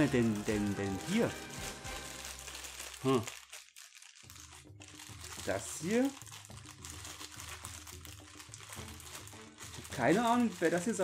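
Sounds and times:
package crinkling and rustling: 0.0s - 11.0s.

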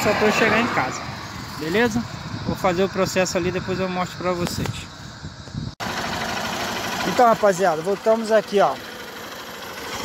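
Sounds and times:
motorcycle engine idling: 4.8s - 10.0s.

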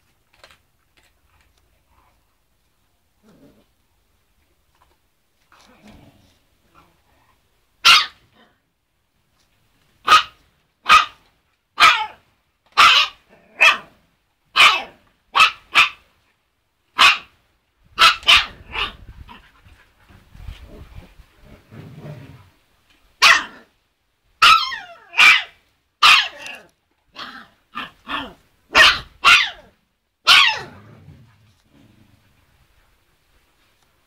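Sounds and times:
puppy barking: 7.8s - 8.2s, 10.0s - 11.2s, 11.8s - 12.2s, 12.8s - 13.9s, 14.6s - 16.0s, 17.0s - 17.3s, 18.0s - 19.0s, 23.2s - 23.7s, 24.4s - 26.6s, 27.2s - 30.8s.

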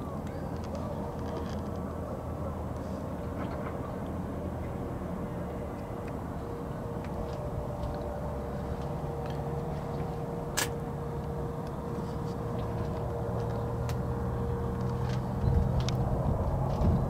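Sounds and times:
low mechanical drone: 0.0s - 17.0s.

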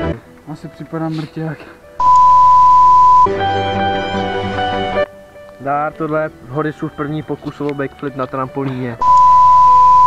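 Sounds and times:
background music: 0.0s - 10.0s
censor bleep: 2.0s - 3.3s, 9.0s - 10.0s.

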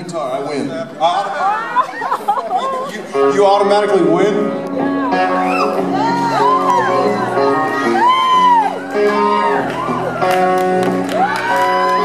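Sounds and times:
audience chattering and calling out: 0.0s - 12.0s.

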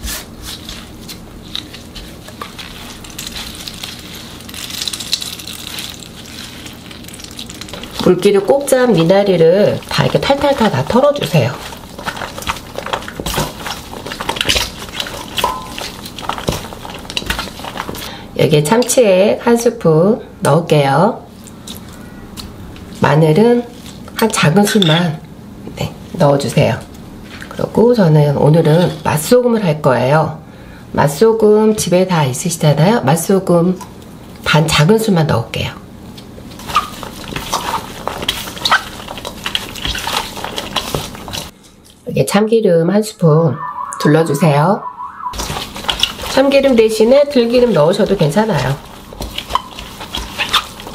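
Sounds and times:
damp greens rustling: 0.4s - 18.0s, 45.4s - 50.9s.

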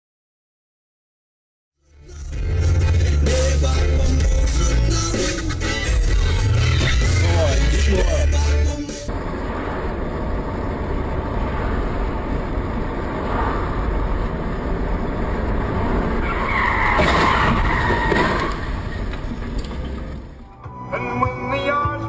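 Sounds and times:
car road and cabin noise: 2.1s - 20.6s
tyre screech: 16.2s - 19.3s.

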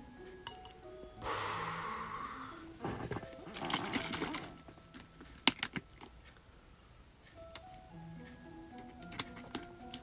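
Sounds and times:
person exhaling breath: 1.2s - 2.7s.

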